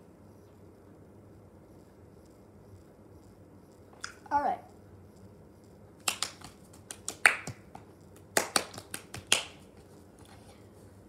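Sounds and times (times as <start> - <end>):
fingers snapping: 6.0 - 9.6.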